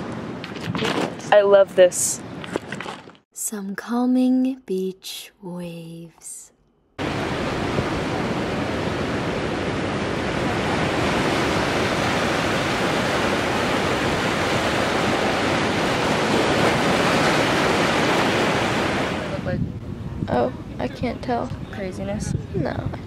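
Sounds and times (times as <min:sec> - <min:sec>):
ocean surf breaking over rocks: 0:07.0 - 0:19.5.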